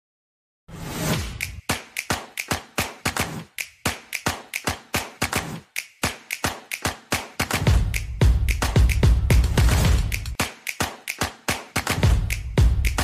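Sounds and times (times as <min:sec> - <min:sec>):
intro music with percussive hits: 0:07.4 - 0:10.5, 0:11.8 - 0:13.0.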